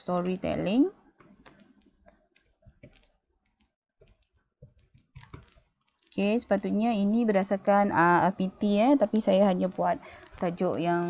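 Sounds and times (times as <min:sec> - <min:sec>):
keystrokes on computer keyboard: 0:01.2 - 0:06.2.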